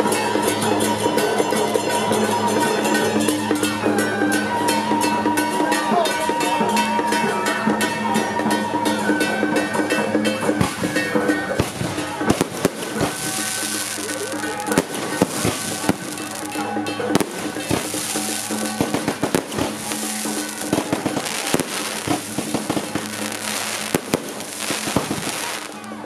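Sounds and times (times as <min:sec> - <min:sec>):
music with held notes: 0:00.0 - 0:26.0
fireworks bangs and crackles: 0:10.4 - 0:26.0
hiss of sparks: 0:12.5 - 0:16.6, 0:17.3 - 0:25.9.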